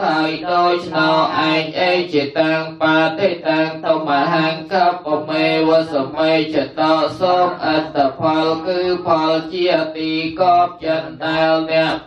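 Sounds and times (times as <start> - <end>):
voices chanting a prayer: 0.0 - 12.0.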